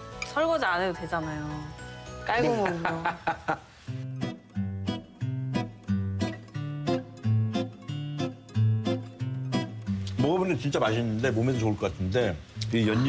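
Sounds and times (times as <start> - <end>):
acoustic guitar picking: 3.9 - 11.8.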